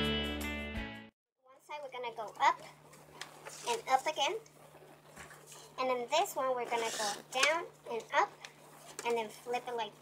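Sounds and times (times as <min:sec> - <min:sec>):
person talking: 0:03.6 - 0:04.5, 0:05.8 - 0:10.0.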